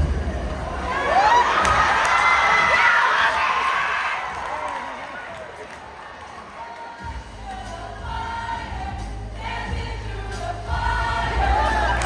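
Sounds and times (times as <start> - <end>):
choir singing: 6.3 - 12.0
musical accompaniment with bass: 7.0 - 12.0.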